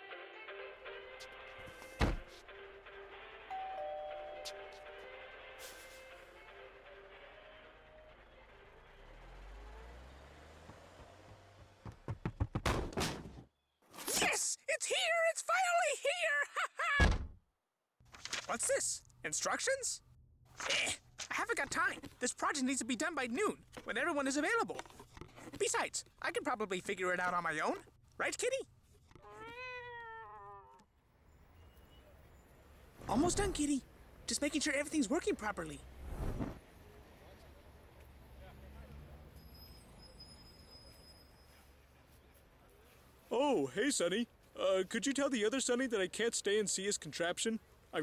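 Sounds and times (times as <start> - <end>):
cat meowing: 29.2 - 30.8.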